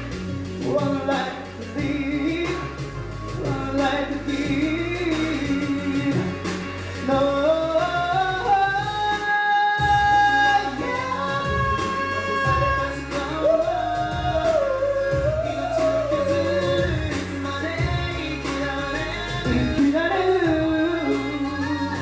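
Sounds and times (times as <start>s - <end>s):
backing track with bass and beat: 0.0s - 22.0s
man singing a pop ballad: 0.0s - 22.0s.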